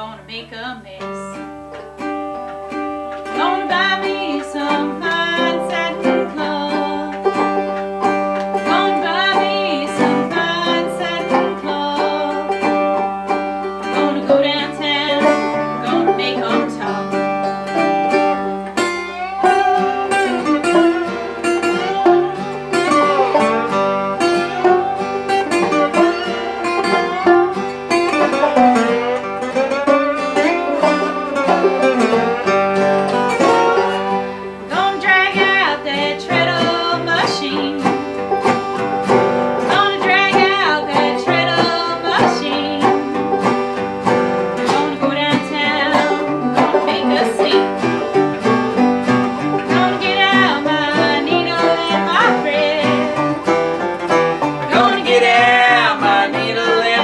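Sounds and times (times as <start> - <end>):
woman singing: 0.0 - 1.4, 3.3 - 7.3, 8.6 - 12.6, 13.8 - 17.2, 34.7 - 38.1, 39.7 - 43.2, 44.6 - 47.8, 49.6 - 53.4, 54.7 - 57.0
banjo and guitars playing blues: 0.0 - 57.0.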